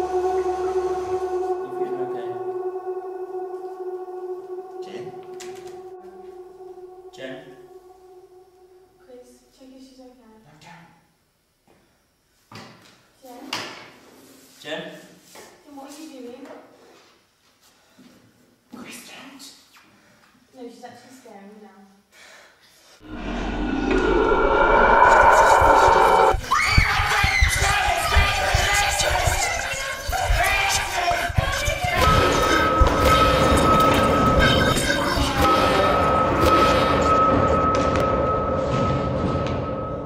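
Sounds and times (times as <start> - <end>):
high-pitched whine: 0.0 - 9.8, 23.0 - 40.0
dense rumbling noise: 23.0 - 26.5.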